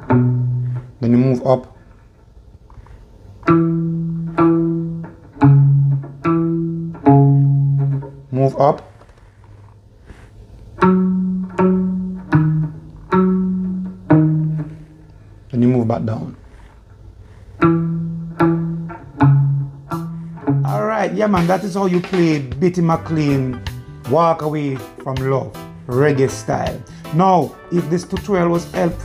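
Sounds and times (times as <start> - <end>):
electric guitar plucked notes: 0.0 - 1.4, 3.4 - 8.7, 10.7 - 15.4, 17.6 - 29.0
bass line: 17.6 - 29.0.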